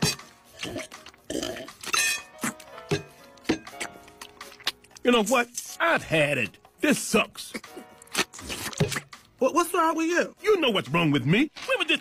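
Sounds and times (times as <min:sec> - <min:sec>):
background music with beat: 0:00.0 - 0:04.7.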